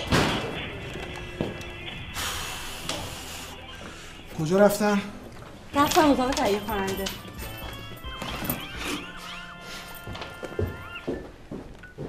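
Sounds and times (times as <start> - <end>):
faint music: 0.0 - 12.0
quick footsteps: 5.2 - 12.0.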